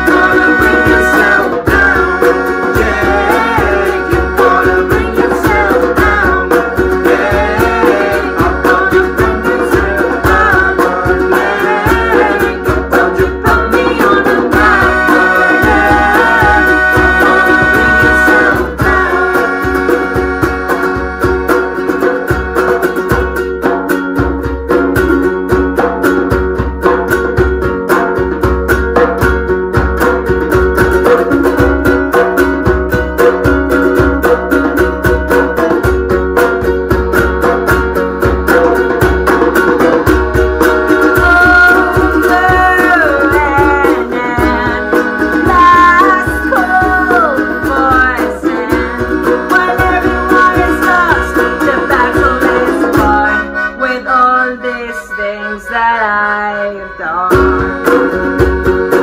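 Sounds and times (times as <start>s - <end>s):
hand-drum beat: 0.0s - 53.5s, 57.3s - 59.0s
high sliding melody: 0.0s - 59.0s
melodica: 0.0s - 59.0s
ukuleles strummed: 0.0s - 59.0s.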